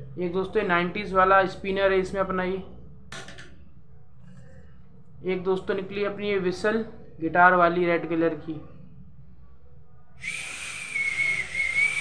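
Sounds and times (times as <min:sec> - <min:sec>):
toy whistle blast: 0:10.2 - 0:12.0.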